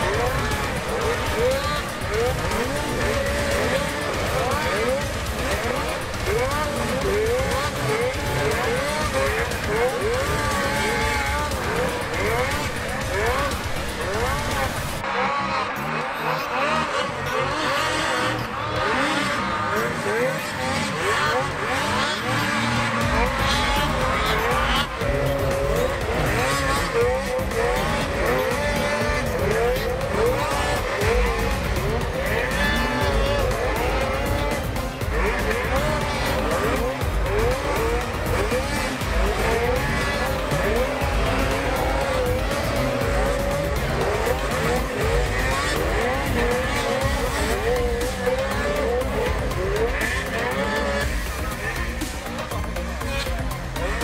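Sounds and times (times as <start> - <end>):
background music: 0.0 - 54.0
snowmobile engines revving: 0.0 - 54.0.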